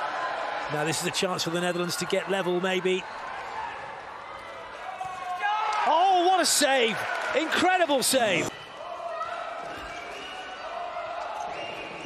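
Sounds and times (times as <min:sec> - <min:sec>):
crowd of spectators: 0:00.0 - 0:12.0.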